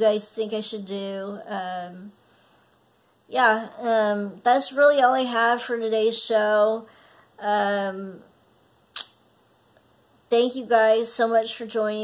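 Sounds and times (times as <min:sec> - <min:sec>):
short sharp click: 0:08.9 - 0:09.2.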